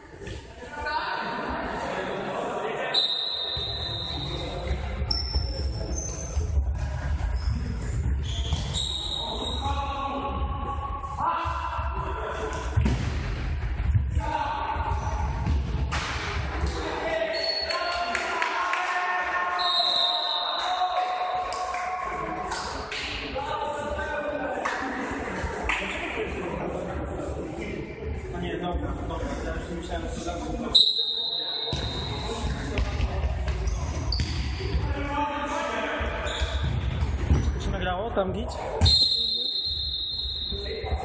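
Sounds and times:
ball thuds echoing in gym: 12.4s - 16.7s.

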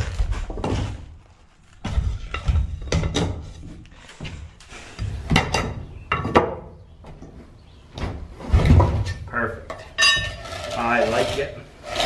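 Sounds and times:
wooden block scraping: 9.7s - 12.0s.

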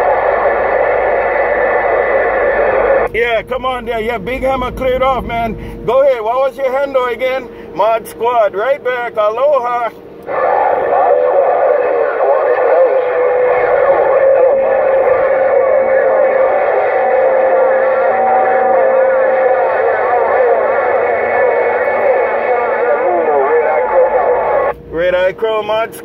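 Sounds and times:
whistling radio tones: 0.0s - 25.6s
overlapping radio voices: 0.0s - 26.0s.

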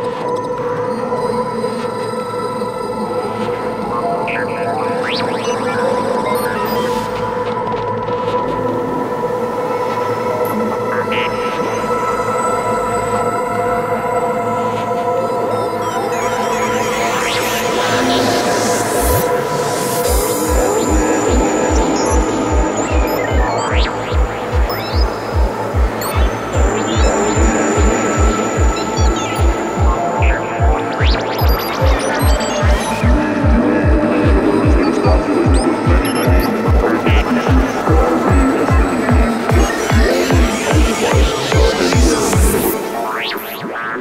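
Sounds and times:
glitchy electronic effects: 3.9s - 9.4s, 10.2s - 12.0s, 15.5s - 44.0s
steady high tones: 15.2s - 44.0s
kick drum: 20.1s - 42.6s.

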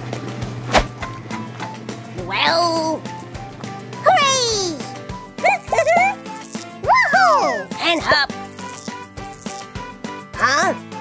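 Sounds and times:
background music: 0.0s - 11.0s
cartoon mechanical clicking and ratcheting: 7.7s - 9.7s.

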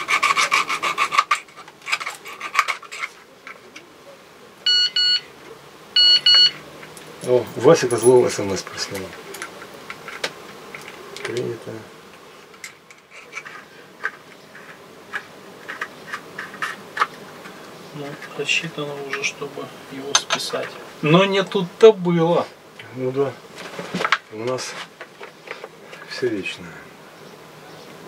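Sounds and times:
metal tool scraping plastic: 0.0s - 3.6s, 12.8s - 17.2s
phone text alert beeps: 4.7s - 5.2s, 6.0s - 6.6s.

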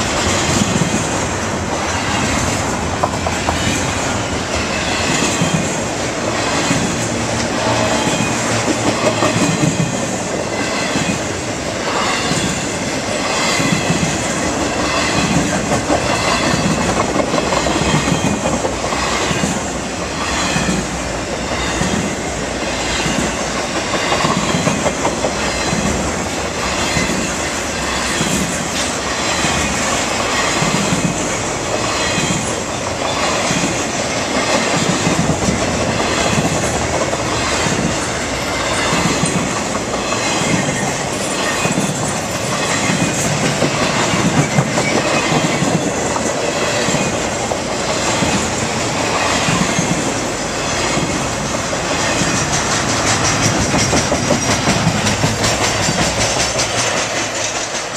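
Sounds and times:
freight train rumble: 0.0s - 57.9s
train wheels clicking over rail joints: 0.0s - 57.9s.

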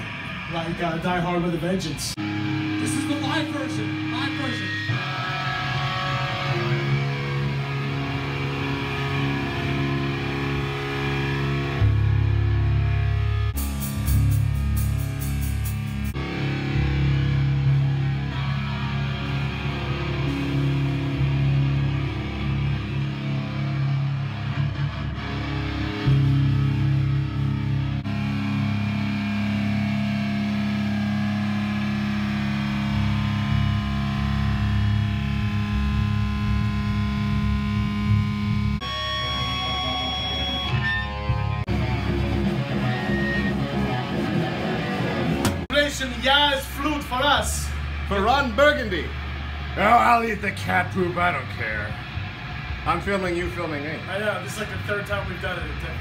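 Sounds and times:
heavy metal distorted electric guitar: 0.0s - 56.0s.

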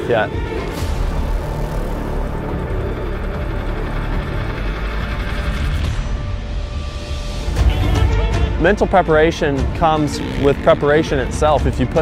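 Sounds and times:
soundtrack music with heavy bass: 0.0s - 12.0s.

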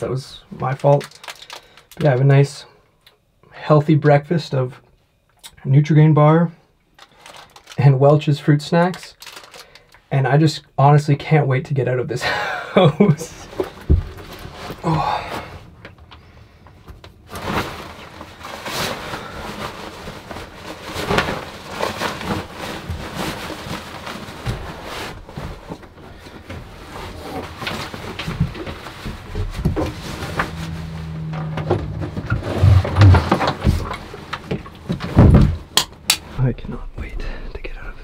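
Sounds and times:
rustling of gear being packed: 0.7s - 2.1s, 7.0s - 7.8s, 9.0s - 10.0s, 17.1s - 35.5s
louder thumps: 28.3s - 36.1s.

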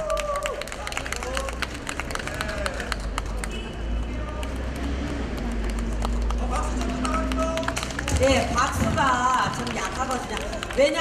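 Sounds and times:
audience hand-clapping: 0.0s - 11.0s
road traffic rumble: 0.0s - 11.0s.

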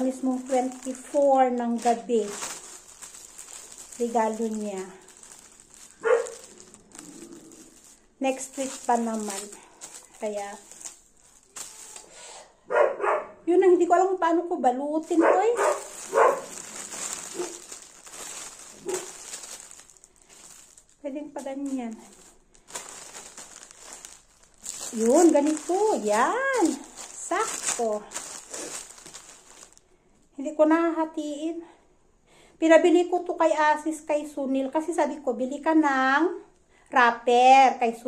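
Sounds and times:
metallic paper rustling and crinkling: 0.0s - 12.2s, 15.0s - 29.8s
dog barking: 6.0s - 6.4s, 12.7s - 13.4s, 15.2s - 16.5s.

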